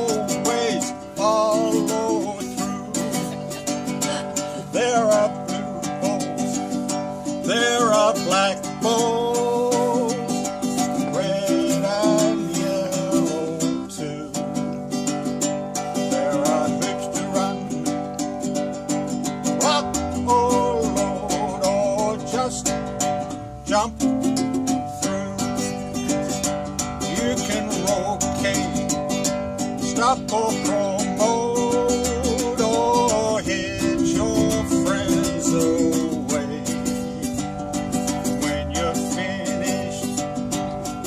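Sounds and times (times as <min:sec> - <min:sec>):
man singing: 0:00.0 - 0:41.0
ukulele strumming: 0:00.0 - 0:41.0.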